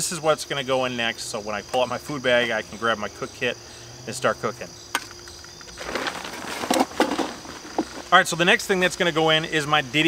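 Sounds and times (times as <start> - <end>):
crickets chirping: 0.0 - 10.0
backpack fabric rustling: 5.8 - 8.1.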